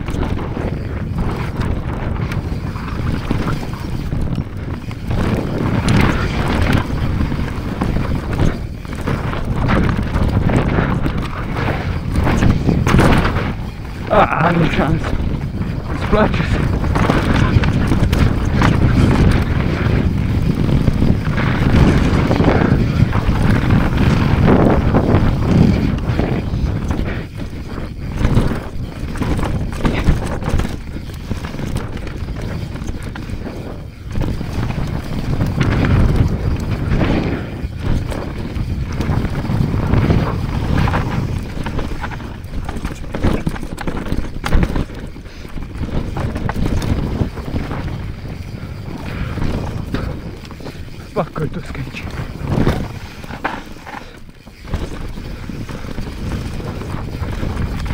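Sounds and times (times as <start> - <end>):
bike knocks and clatter: 0.0 - 51.2, 51.9 - 57.9
tyres on dirt: 0.0 - 57.9
wind on microphone: 0.0 - 57.9.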